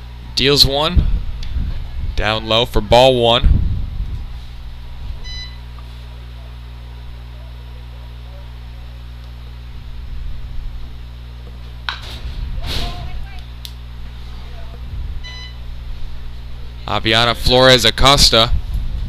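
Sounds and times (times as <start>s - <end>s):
low electrical hum: 0.0s - 19.0s.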